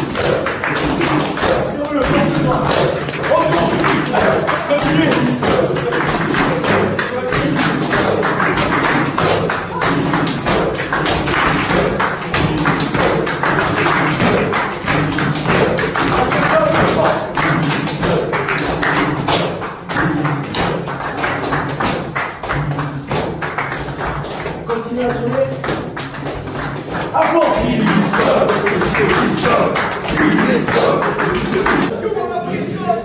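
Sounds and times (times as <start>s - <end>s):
rhythmic hand clapping: 0.0s - 33.0s
voices chanting and calling out: 1.6s - 10.6s, 27.1s - 33.0s.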